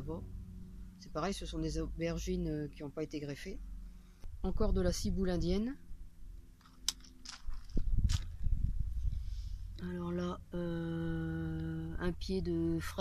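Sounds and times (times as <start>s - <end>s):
low rumble: 0.0s - 13.0s
sharp click: 6.6s - 7.5s.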